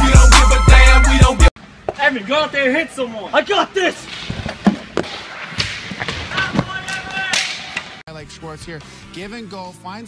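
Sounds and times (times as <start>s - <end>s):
sharp knocks and thumps: 4.1s - 7.9s.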